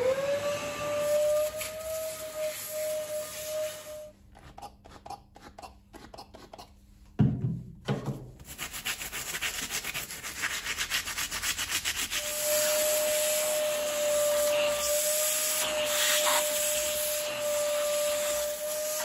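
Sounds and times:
vacuum whining: 0.0s - 4.1s, 12.2s - 19.0s
bristle brush scrubbing rubber: 8.4s - 19.0s.

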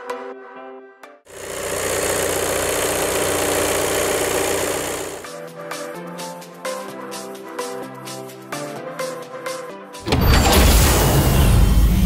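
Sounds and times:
car engine running loudly: 1.3s - 5.3s
electronic background music: 5.2s - 12.0s.

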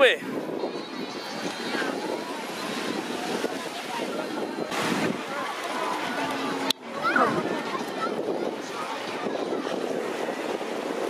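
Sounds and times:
small waves washing on sand: 0.0s - 11.0s
wind on microphone: 0.0s - 11.0s
distant voices: 0.3s - 11.0s.

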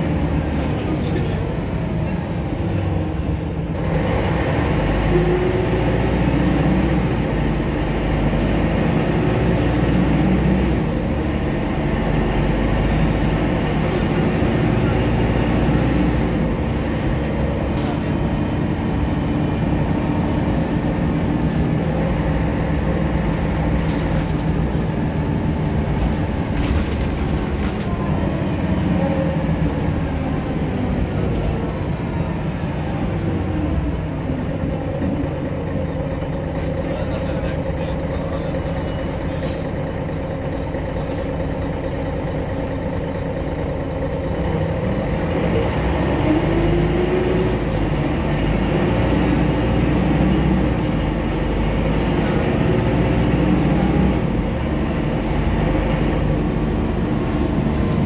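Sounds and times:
bus engine drone: 0.0s - 58.0s
road noise: 0.0s - 58.0s.

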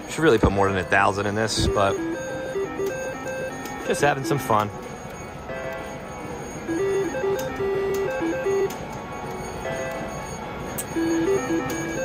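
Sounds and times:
casino background noise: 0.0s - 12.0s
slot machine beeping tune: 0.0s - 12.0s.

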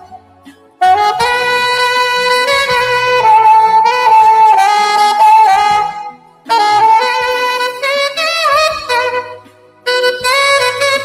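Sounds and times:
saxophone slow melody: 0.0s - 11.0s.

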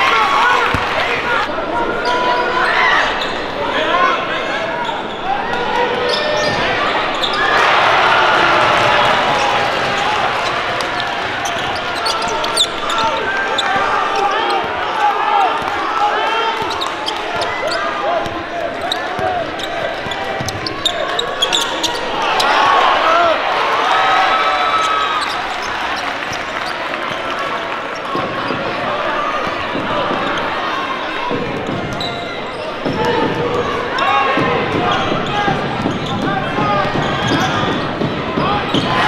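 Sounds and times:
crowd and player voices: 0.0s - 39.0s
basketball bouncing on court: 7.8s - 14.8s, 16.6s - 22.1s.

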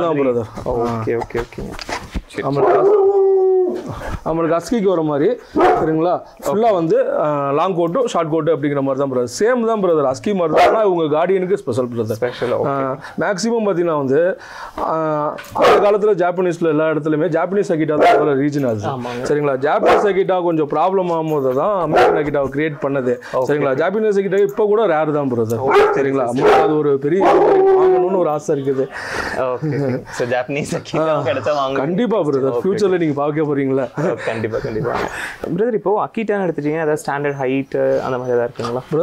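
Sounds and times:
man talking: 0.0s - 39.0s.

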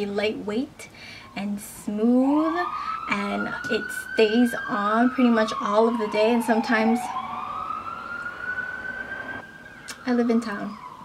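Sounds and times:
emergency siren wailing: 1.2s - 11.0s.

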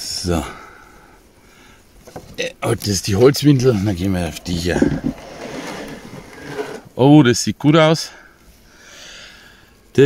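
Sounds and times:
board scraping out of wooden slot: 3.6s - 6.9s.

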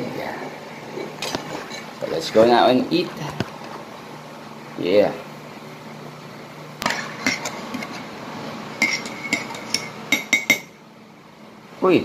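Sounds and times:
metal spoon clinking on dishes: 8.8s - 10.8s.

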